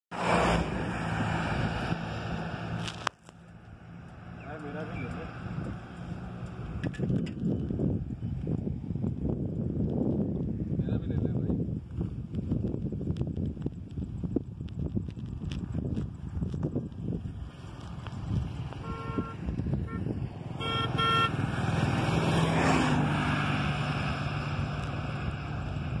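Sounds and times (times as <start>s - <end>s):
van driving past: 0.1s - 6.9s, 17.6s - 26.0s
motor vehicle passing by: 0.1s - 9.0s, 17.2s - 26.0s
steady engine hum: 0.2s - 10.8s
vehicle horn beeping: 18.8s - 21.4s.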